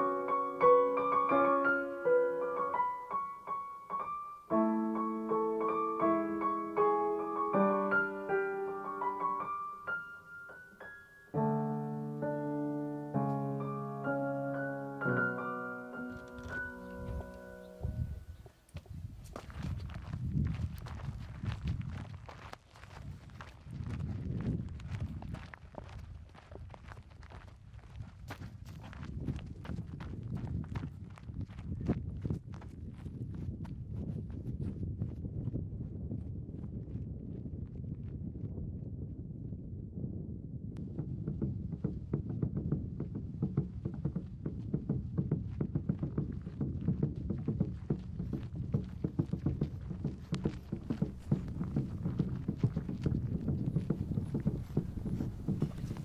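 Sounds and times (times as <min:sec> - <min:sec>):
footsteps crunching on gravel: 0:16.0 - 0:33.5, 0:46.0 - 0:56.0.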